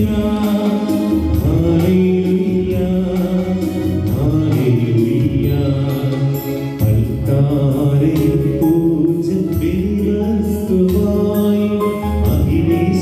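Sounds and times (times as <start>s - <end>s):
keyboard accompaniment: 0.0s - 13.0s
person singing: 0.0s - 13.0s.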